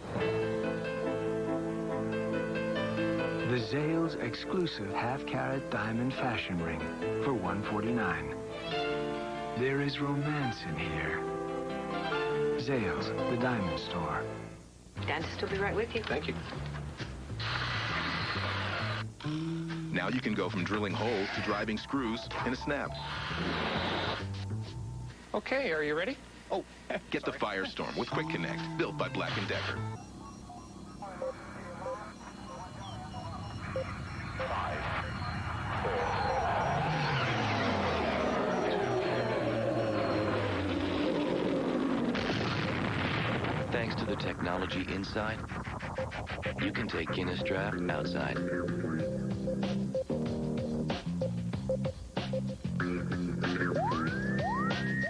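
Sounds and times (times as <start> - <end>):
soft background music: 0.0 - 17.4, 19.9 - 25.2, 27.5 - 35.3, 46.0 - 55.0
sweeps falling in pitch: 31.8 - 43.8.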